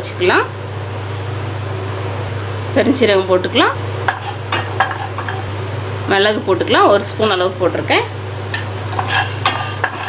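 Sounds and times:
low background hum: 0:00.0 - 0:10.0
spatula clicks and scrapes: 0:08.6 - 0:10.0.

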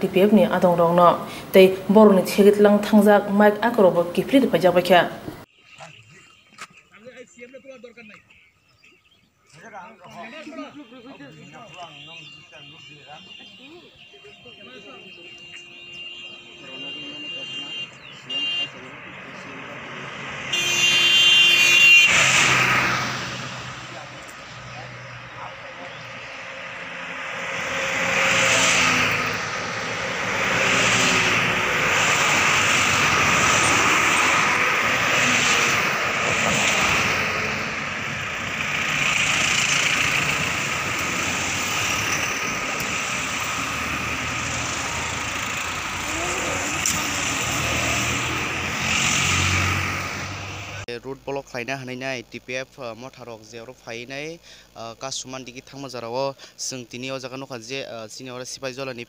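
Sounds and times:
cars driving past on highway: 0:00.0 - 0:07.5, 0:08.3 - 0:50.9
vehicle horn: 0:05.0 - 0:09.0, 0:10.1 - 0:37.9.

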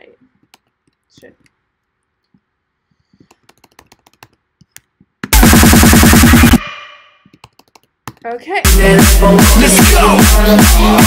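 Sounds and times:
keyboard and mouse clicks: 0:00.4 - 0:01.6, 0:03.2 - 0:05.1, 0:07.3 - 0:08.4
dubstep music burst: 0:05.4 - 0:07.2, 0:08.7 - 0:11.0.

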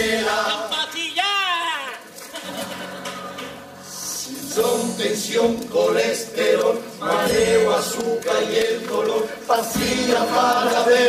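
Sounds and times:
group of people singing: 0:00.0 - 0:01.0, 0:04.0 - 0:11.0.

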